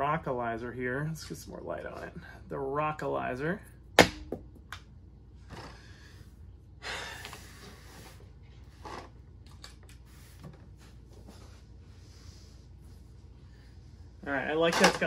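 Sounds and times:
sharp knock: 0:04.0 - 0:04.5
person exhaling breathily: 0:06.8 - 0:08.2.

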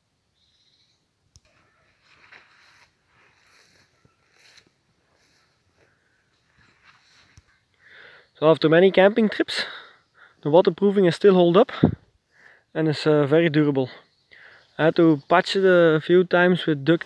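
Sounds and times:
faint rustling: 0:01.4 - 0:07.7.

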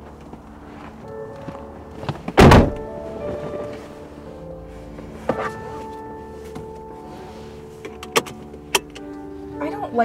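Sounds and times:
car door shutting: 0:02.0 - 0:04.0.

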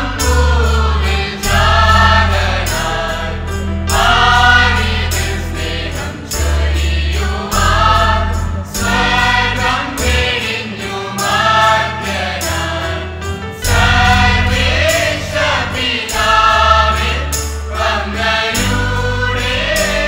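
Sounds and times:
choir singing: 0:00.0 - 0:20.0
sustained low bass notes: 0:00.0 - 0:20.0.

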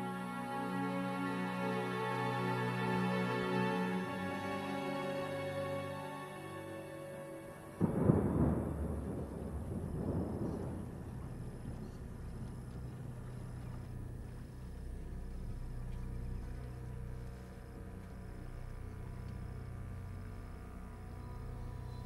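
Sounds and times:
thunder rolling: 0:07.8 - 0:14.3
boat motor droning: 0:10.0 - 0:22.0.

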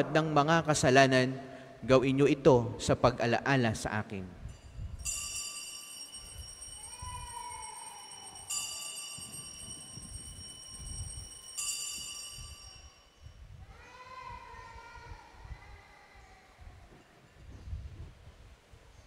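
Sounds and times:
altar bell ringing: 0:04.5 - 0:13.4
falling wavering call: 0:05.9 - 0:12.4.

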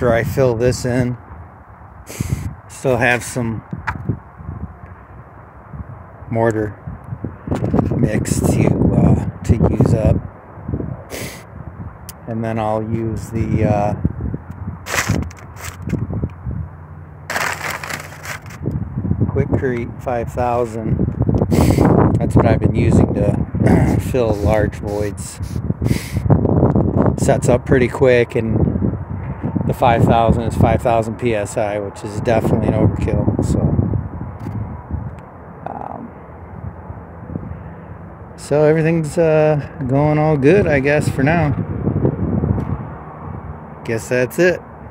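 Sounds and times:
low outdoor rumble: 0:00.0 - 0:44.9
footsteps on dirt and rubble: 0:14.9 - 0:16.0, 0:17.3 - 0:18.6
rustle: 0:14.9 - 0:16.0, 0:17.3 - 0:18.6
short scrapes: 0:14.9 - 0:16.0, 0:17.3 - 0:18.6.

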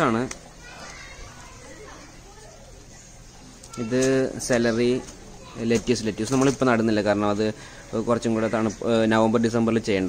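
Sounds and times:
distant children playing: 0:00.0 - 0:10.0.

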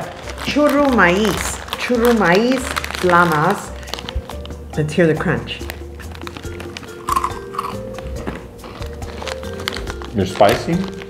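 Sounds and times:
corn snack crunching: 0:00.0 - 0:04.7, 0:05.5 - 0:11.0
background music: 0:00.0 - 0:11.0.

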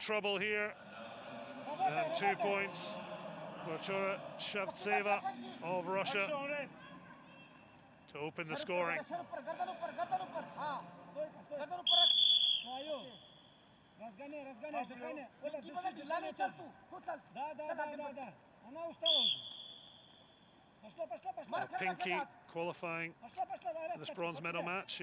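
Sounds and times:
referee's whistle blasts: 0:11.8 - 0:13.6, 0:19.0 - 0:20.4.

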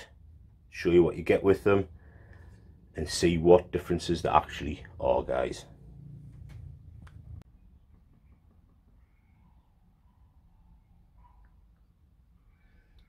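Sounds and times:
faint high chirps: 0:08.2 - 0:13.0.

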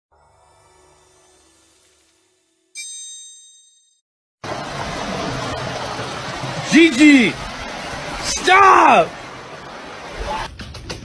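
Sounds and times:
bright chiming ding: 0:02.8 - 0:04.0
steady rushing noise: 0:04.4 - 0:10.5.

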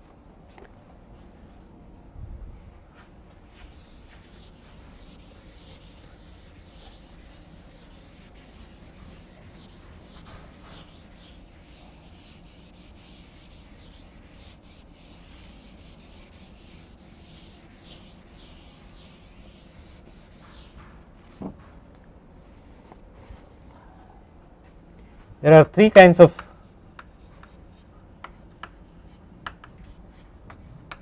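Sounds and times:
duster rubbing on chalkboard: 0:03.4 - 0:20.9, 0:26.2 - 0:31.0.

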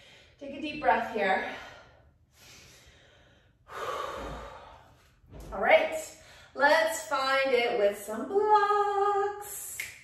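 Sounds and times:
woman breathing deeply: 0:00.0 - 0:00.4, 0:01.4 - 0:05.3.

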